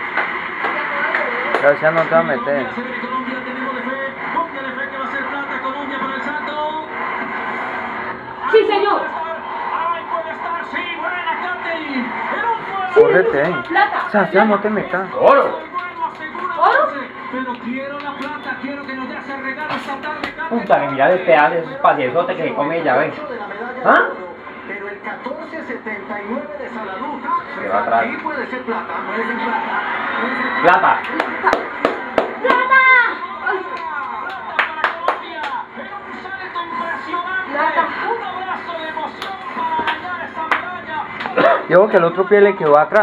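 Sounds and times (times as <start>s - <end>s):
hands clapping: 0.0s - 2.4s, 13.2s - 21.4s, 31.0s - 32.8s, 33.6s - 35.6s, 39.0s - 41.4s, 42.6s - 42.8s
excited voices: 31.1s - 34.6s.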